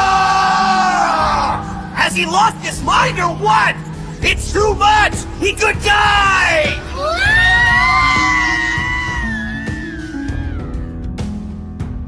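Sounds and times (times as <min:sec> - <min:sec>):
man screaming: 0:00.0 - 0:02.0, 0:05.7 - 0:10.6
background music: 0:00.0 - 0:12.0.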